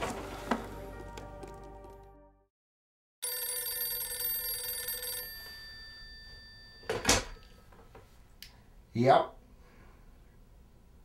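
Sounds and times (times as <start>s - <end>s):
telephone ringing: 3.2s - 7.8s.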